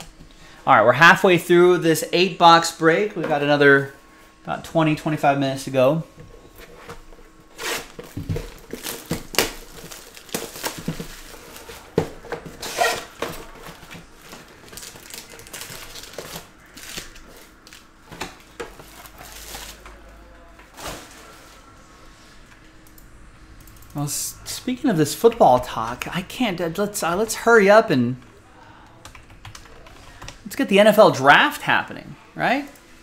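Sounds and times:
foil card packs rustling: 6.3s - 21.8s
plastic wrap crinkling and tearing: 7.5s - 20.0s.

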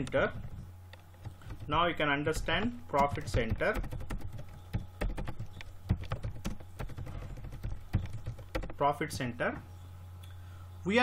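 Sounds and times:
steady low hum: 0.0s - 11.0s
keyboard typing clicks: 2.5s - 8.8s.

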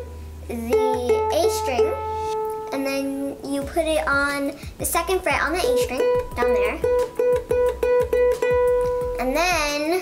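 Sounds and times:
ukulele string plucked: 0.0s - 2.8s, 5.4s - 9.4s.

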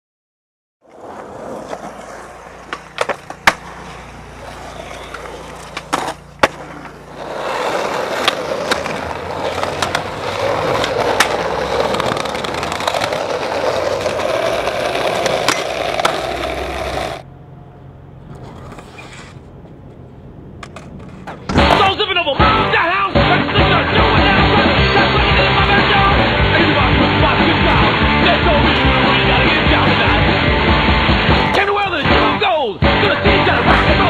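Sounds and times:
skateboard clacking on ground: 0.8s - 17.2s, 18.2s - 21.8s
skateboard wheels rolling on concrete: 0.8s - 17.3s, 18.2s - 34.0s.

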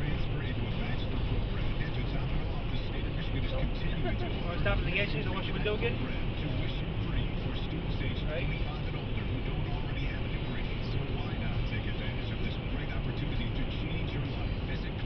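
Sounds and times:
car road and engine rumble: 0.0s - 15.0s
indistinct talk from car radio: 0.0s - 15.0s.

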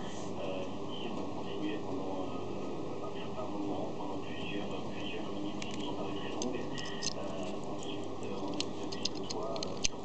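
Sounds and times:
background voices: 0.1s - 10.0s.

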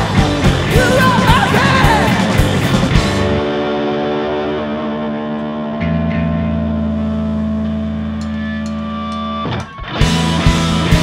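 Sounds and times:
drums keeping steady beat: 0.0s - 3.4s, 10.0s - 11.0s
bass guitar: 0.0s - 11.0s
distorted electric guitar: 0.0s - 11.0s.

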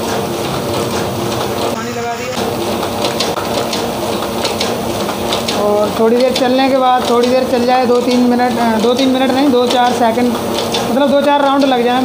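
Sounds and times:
printing press running: 0.0s - 12.0s.

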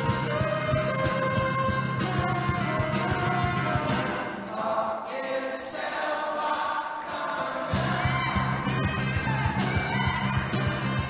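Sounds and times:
choir singing held notes: 3.1s - 10.5s.

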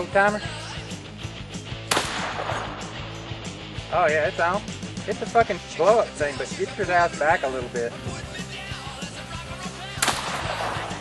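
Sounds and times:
rock music: 0.0s - 11.0s
gunshot: 1.9s - 3.0s, 10.0s - 11.0s.

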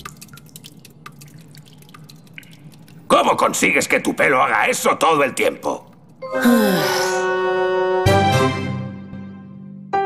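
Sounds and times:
water dripping: 0.0s - 6.2s.

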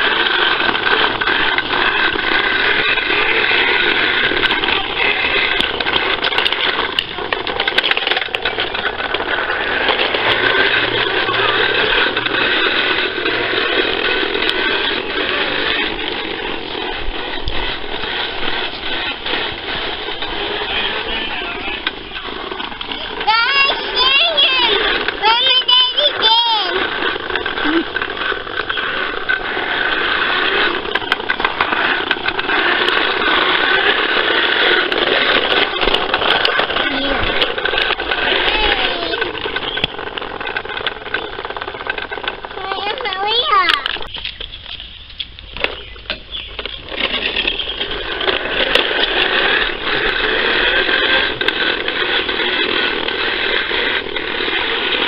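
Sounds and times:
toy lawnmower whirring and rattling: 0.0s - 55.0s.

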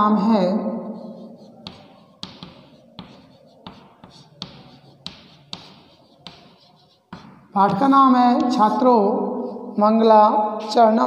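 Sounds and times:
chalk scratching: 0.9s - 9.8s
chalk tapping on chalkboard: 1.0s - 8.7s.

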